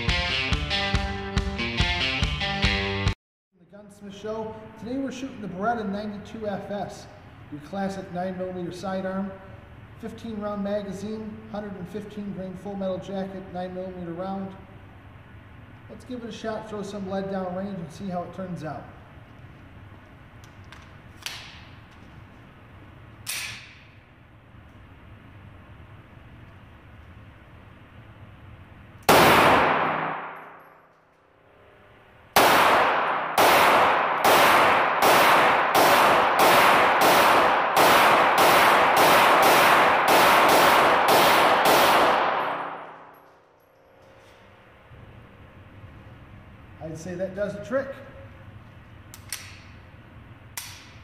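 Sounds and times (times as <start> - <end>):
pistol shots echoing indoors: 23.2 - 24.0, 29.0 - 43.9.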